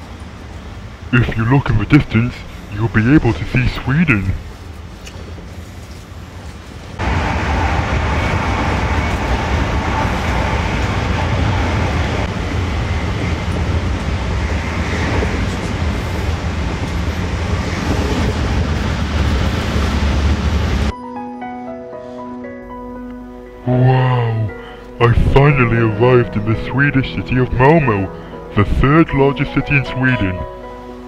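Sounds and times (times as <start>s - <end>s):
train rumbling and rushing: 0.0s - 20.9s, 24.4s - 31.0s.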